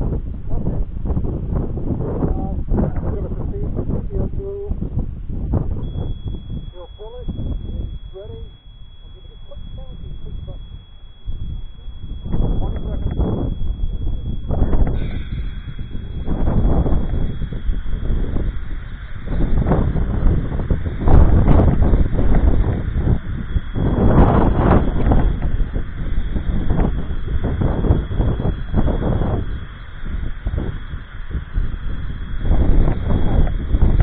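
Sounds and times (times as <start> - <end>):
wind buffeting microphone: 0.0 - 34.0
faint steady high tone: 5.8 - 34.0.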